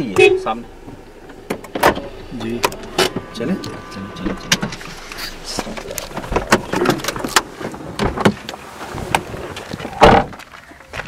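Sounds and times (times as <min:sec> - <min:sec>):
rustling movement: 0:00.0 - 0:11.0
car door latch clicks: 0:01.3 - 0:08.4.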